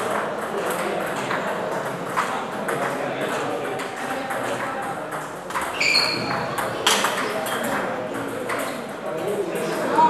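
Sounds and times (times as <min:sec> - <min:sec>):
murmur of voices in a hall: 0:00.0 - 0:10.0
table tennis ball clicking: 0:06.6 - 0:08.8.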